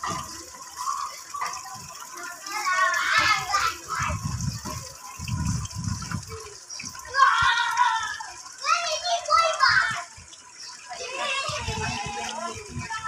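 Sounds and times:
children's voices: 0:00.0 - 0:13.0
water trickling into pond: 0:00.0 - 0:13.0.

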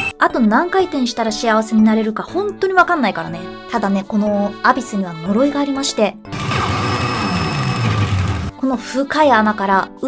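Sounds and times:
low tone sliding downward: 0:06.3 - 0:08.5
pachinko machine rush of noise: 0:06.3 - 0:08.5.

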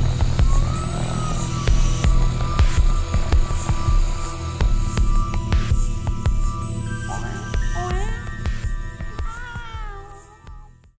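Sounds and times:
sustained music tones: 0:00.0 - 0:10.9
meow-like gliding call: 0:09.1 - 0:10.5.

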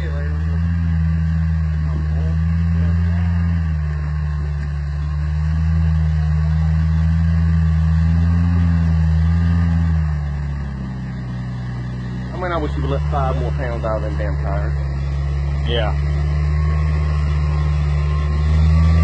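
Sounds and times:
truck engine climbing at low revs: 0:00.0 - 0:19.0.

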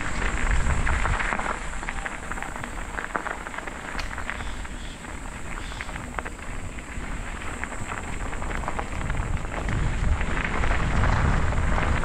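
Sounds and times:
bicycle tyres on gravel: 0:00.0 - 0:12.0
wind rumbling on microphone: 0:00.0 - 0:12.0.

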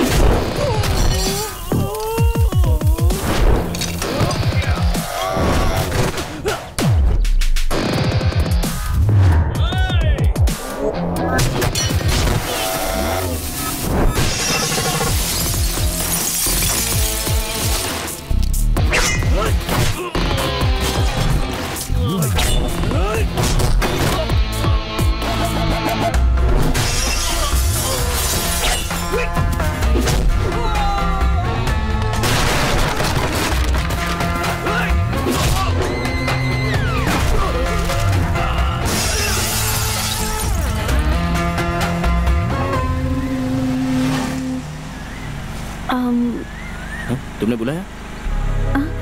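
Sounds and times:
action film score with bass beat: 0:00.0 - 0:44.1
broken glass showering down: 0:12.3 - 0:18.0, 0:38.9 - 0:40.7
glass window shattering: 0:13.6 - 0:18.1, 0:26.8 - 0:29.1, 0:32.2 - 0:34.5, 0:38.8 - 0:40.8.

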